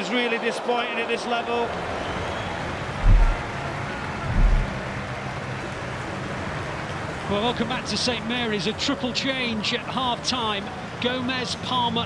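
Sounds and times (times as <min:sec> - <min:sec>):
stadium crowd noise: 0:00.0 - 0:12.0
deep bass thumps: 0:03.0 - 0:03.4, 0:04.3 - 0:04.8.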